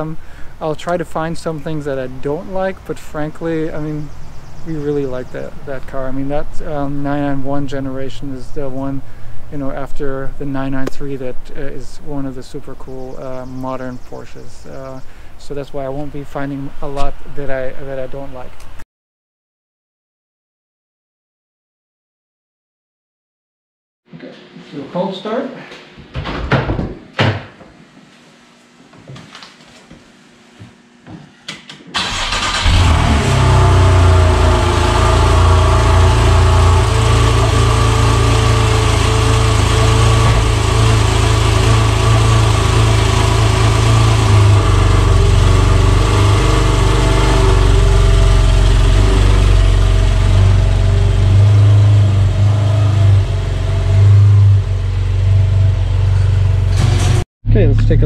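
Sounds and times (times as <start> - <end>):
car engine starting and idling: 32.0 - 58.0.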